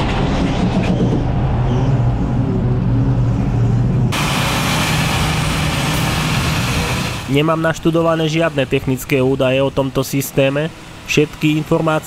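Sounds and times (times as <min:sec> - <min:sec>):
truck diesel engine under load: 0:02.1 - 0:12.0.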